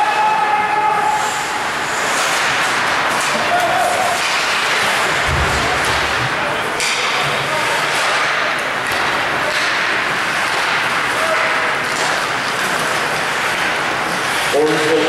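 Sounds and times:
skates on ice: 0:01.2 - 0:15.0
spectators talking: 0:03.3 - 0:15.0.

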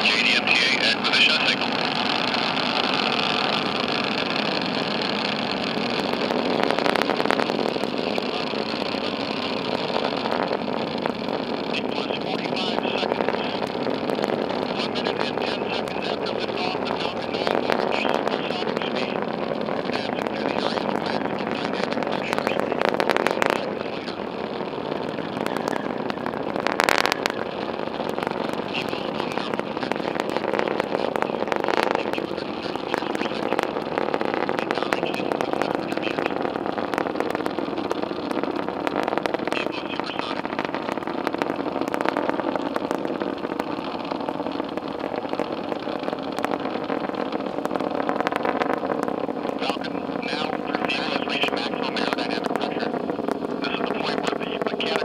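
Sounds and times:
distant rocket engine roar: 0:00.0 - 0:55.0
sharp crackles: 0:00.0 - 0:55.0.

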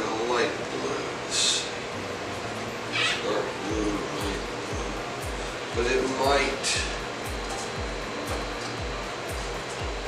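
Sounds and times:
music with kick-drum beat: 0:03.7 - 0:10.0.

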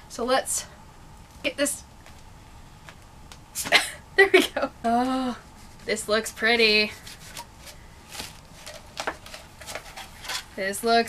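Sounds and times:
paper rustling and crackling: 0:06.9 - 0:10.6.

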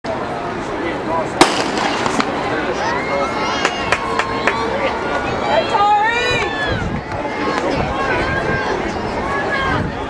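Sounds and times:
crowd voices: 0:00.0 - 0:10.0
loud sharp bang: 0:01.4 - 0:02.4.

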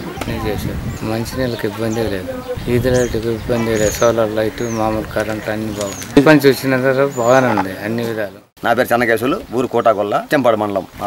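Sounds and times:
man speaking: 0:00.3 - 0:11.0.

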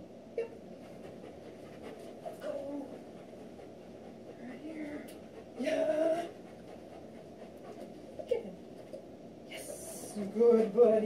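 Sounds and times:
dog panting: 0:00.7 - 0:09.0.

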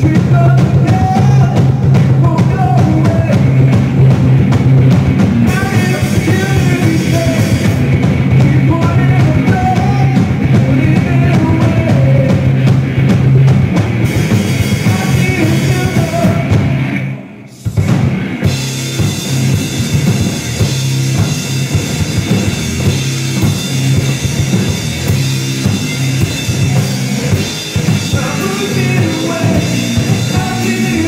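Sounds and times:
rock band playing live: 0:00.0 - 0:31.0.

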